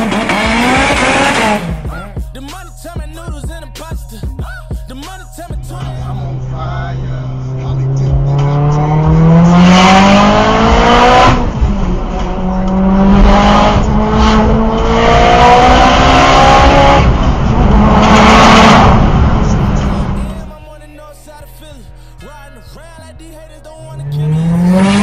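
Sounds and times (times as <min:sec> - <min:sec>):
car engine accelerating through gears: 0:00.0 - 0:01.9, 0:06.3 - 0:20.2, 0:23.8 - 0:25.0.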